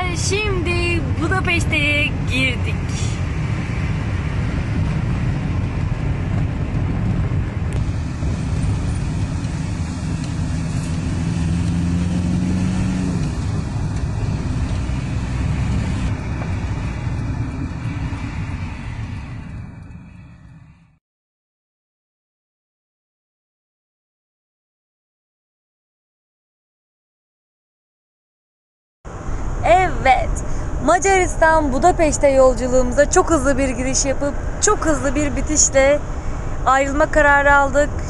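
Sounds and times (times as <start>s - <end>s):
vehicle engine and tyres rumbling: 0.0s - 21.0s, 29.1s - 38.0s.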